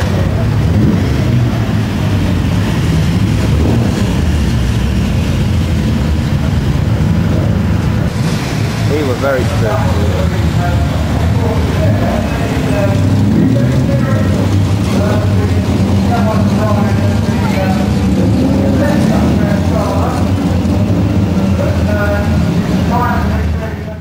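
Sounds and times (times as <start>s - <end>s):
indistinct voices: 0.0s - 24.0s
racing car engines droning: 0.0s - 24.0s.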